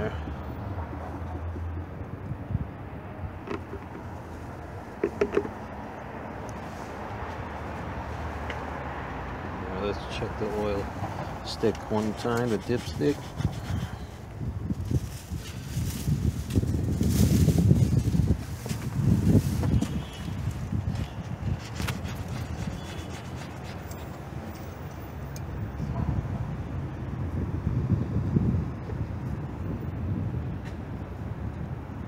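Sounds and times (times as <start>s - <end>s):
wind buffeting microphone: 0.0s - 8.4s, 9.9s - 32.0s.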